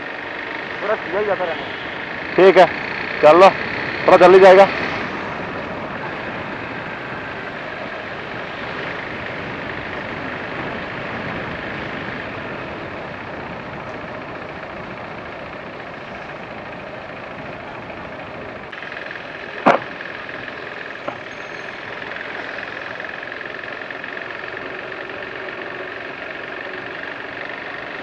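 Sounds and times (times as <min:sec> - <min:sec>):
motorcycle engine running: 0:00.0 - 0:28.0
wind and road noise: 0:00.0 - 0:28.0.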